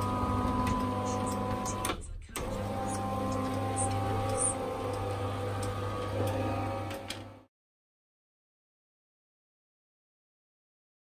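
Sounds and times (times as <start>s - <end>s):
garage door motor humming: 0.0s - 7.5s.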